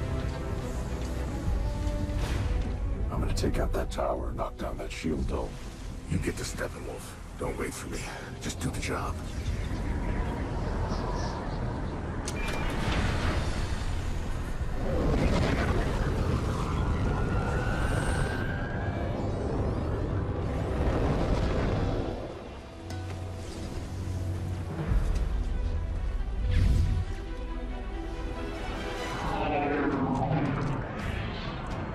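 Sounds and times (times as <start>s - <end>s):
deep continuous rumble: 0.0s - 31.9s
dramatic score music: 0.0s - 31.9s.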